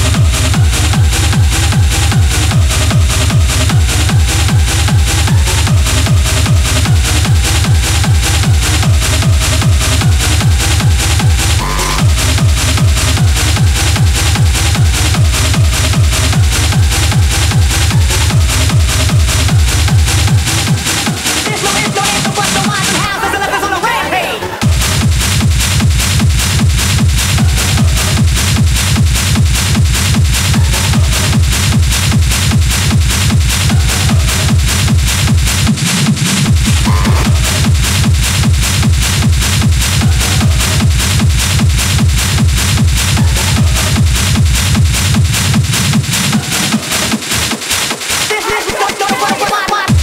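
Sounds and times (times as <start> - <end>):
hard techno music: 0.0 - 50.0.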